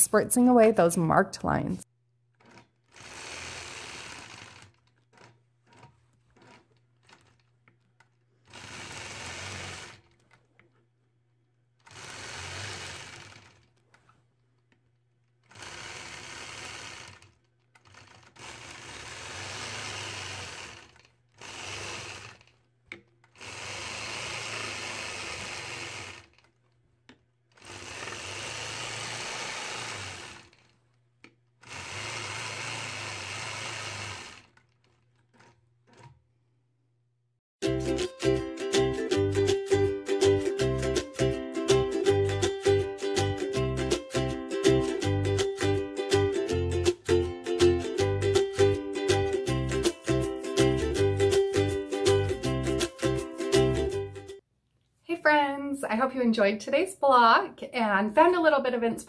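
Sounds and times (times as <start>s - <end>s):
quilting machine stitching: 2.3s - 10.9s, 11.6s - 36.4s.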